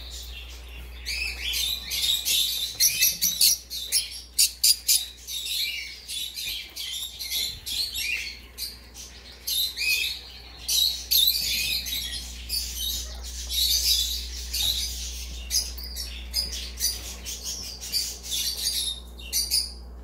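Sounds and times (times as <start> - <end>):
caged birds chirping: 0.0 - 20.0.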